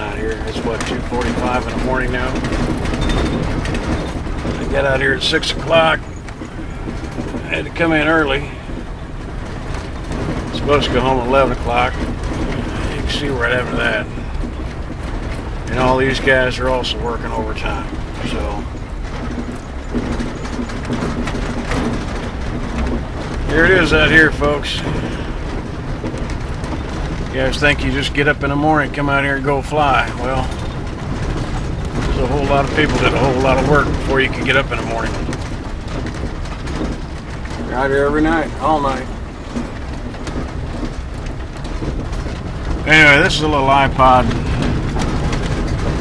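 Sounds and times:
engine and road rumble: 0.0 - 46.0
faint rattles: 0.0 - 46.0.

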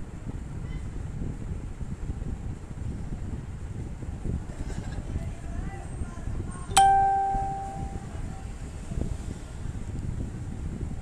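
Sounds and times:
low background rumble: 0.0 - 11.0
ringing tone: 6.8 - 8.1.

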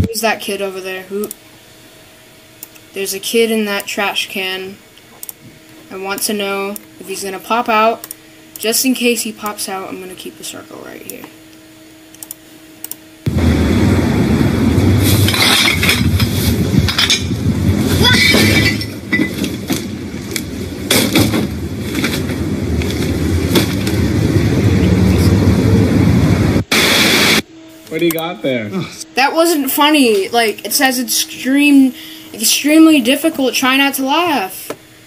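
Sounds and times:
distorted voices: 0.0 - 0.4, 13.3 - 27.4
crackling clatter: 13.3 - 27.4
burst of noise: 13.3 - 27.5.

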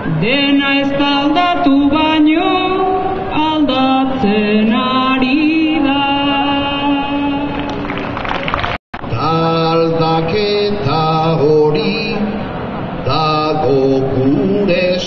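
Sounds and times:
man singing chant-like line: 0.0 - 7.5, 9.1 - 15.0
woman singing a long note: 1.2 - 7.6.

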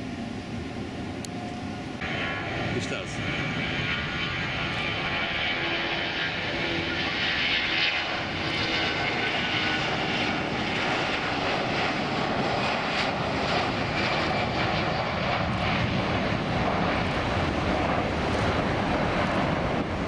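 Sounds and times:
jet engines at takeoff: 0.0 - 20.0.

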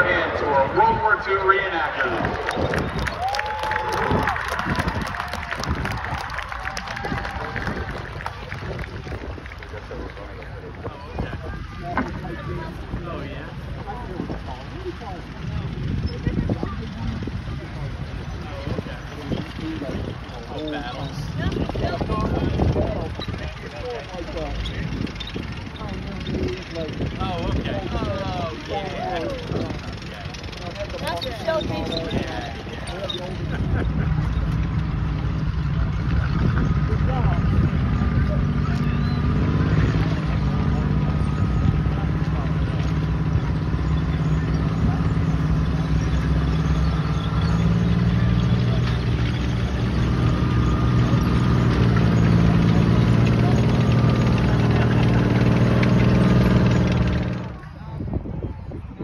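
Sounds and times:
tracked vehicle engine running: 0.0 - 59.0.

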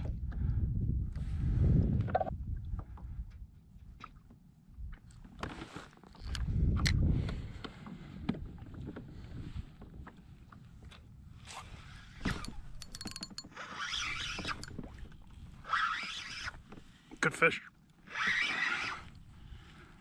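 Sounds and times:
fishing reel whirring: 12.3 - 14.8
small clicks and knocks: 12.4 - 13.5.

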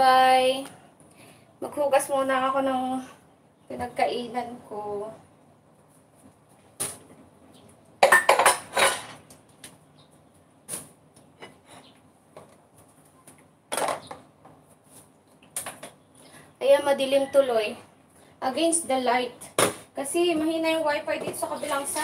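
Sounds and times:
dishes and cutlery clinking: 8.0 - 9.2.

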